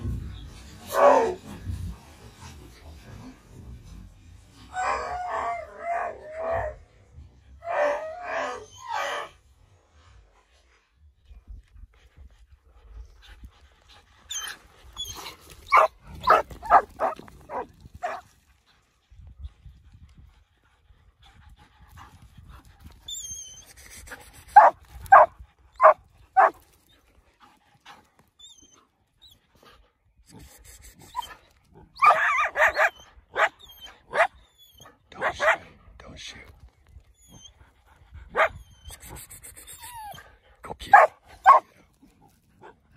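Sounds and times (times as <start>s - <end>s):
dogs barking: 15.7s - 18.2s, 24.6s - 26.6s, 32.0s - 34.3s, 35.1s - 35.6s, 40.9s - 41.7s.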